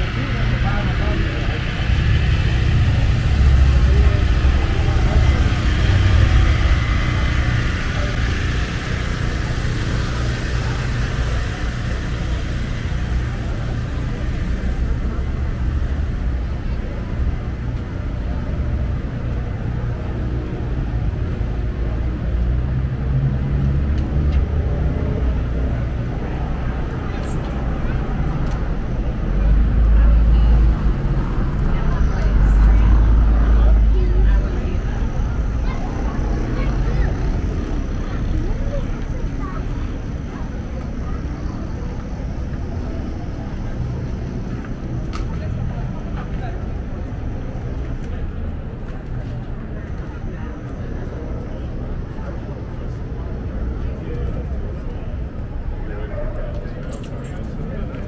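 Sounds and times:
heavy low rumble: 0.0s - 58.0s
people's voices: 0.0s - 58.0s
traffic noise: 0.0s - 58.0s.

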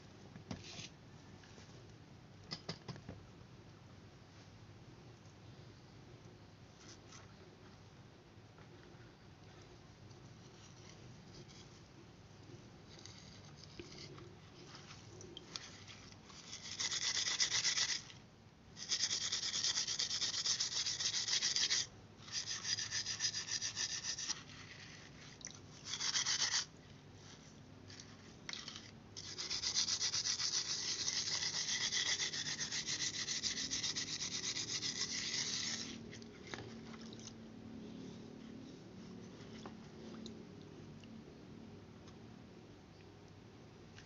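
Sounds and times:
steel wool scrubbing: 18.8s - 37.0s.

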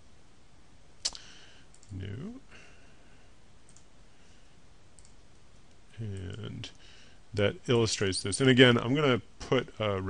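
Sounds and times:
faint room hiss: 0.0s - 10.0s
computer mouse click: 1.1s - 2.0s, 3.7s - 3.9s, 5.0s - 6.4s.

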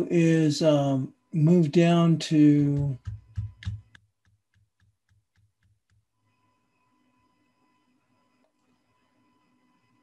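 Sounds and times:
faint steady electronic tone: 0.0s - 10.0s.

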